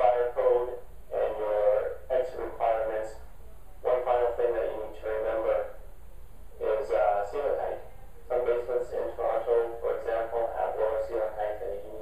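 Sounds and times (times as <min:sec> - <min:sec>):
man speaking through loudspeakers: 0:00.0 - 0:03.2, 0:03.8 - 0:05.8, 0:06.6 - 0:12.0.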